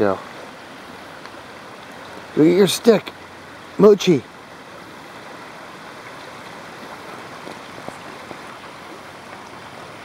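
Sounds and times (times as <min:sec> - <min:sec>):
flowing creek water: 0:00.0 - 0:10.0.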